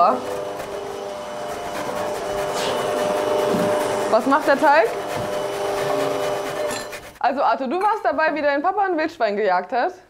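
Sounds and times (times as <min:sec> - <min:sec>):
stand mixer motor hum: 0:00.0 - 0:07.2.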